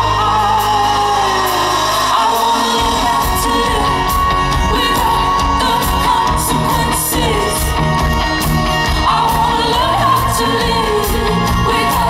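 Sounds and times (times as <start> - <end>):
woman singing: 0.0 - 8.0, 8.8 - 12.0
live pop band: 0.0 - 12.0.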